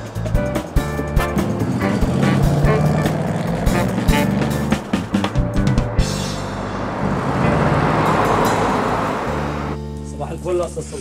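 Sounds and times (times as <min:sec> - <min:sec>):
cars driving past: 0:01.2 - 0:09.9.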